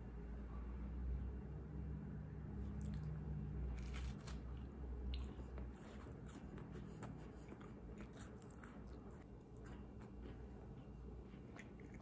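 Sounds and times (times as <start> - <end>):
biting and chewing: 2.6 - 12.0.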